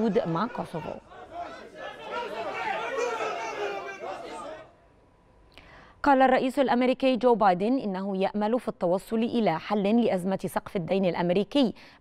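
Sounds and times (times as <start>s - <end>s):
crowd voices talking at once: 0.0s - 4.8s.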